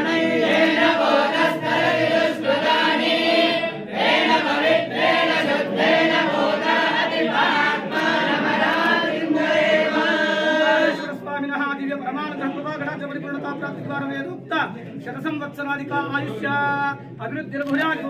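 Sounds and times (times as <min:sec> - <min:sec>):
group chanting in chorus: 0:00.0 - 0:11.2.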